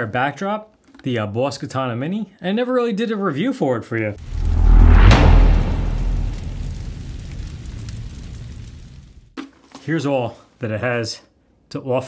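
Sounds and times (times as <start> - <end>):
low rumble with crackles: 4.2 - 9.4.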